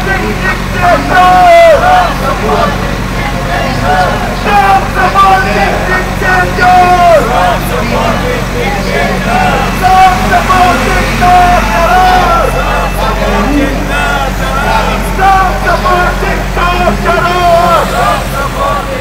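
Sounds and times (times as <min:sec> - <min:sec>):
man chanting through a megaphone: 0:00.0 - 0:19.0.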